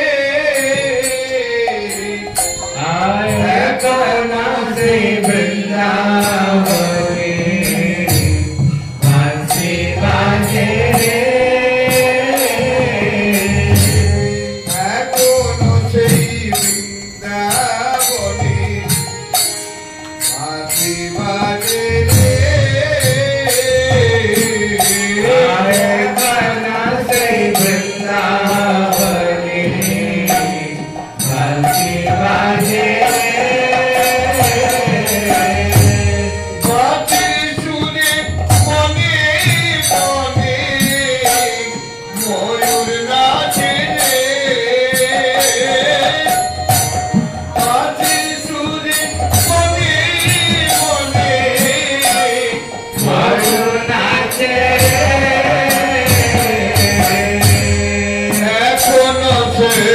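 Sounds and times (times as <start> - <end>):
person singing a chant: 0.0 - 18.8
metal hand cymbals struck: 0.5 - 59.9
group chanting: 53.0 - 58.2.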